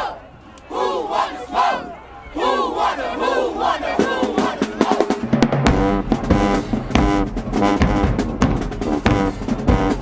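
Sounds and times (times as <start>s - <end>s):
group shouting a chant: 0.0s - 5.2s.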